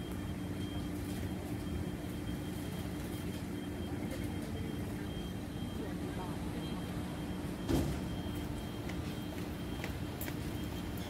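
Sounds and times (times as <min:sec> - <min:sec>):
steady low hum: 0:00.0 - 0:11.0
faint voices of passers-by: 0:03.3 - 0:07.5.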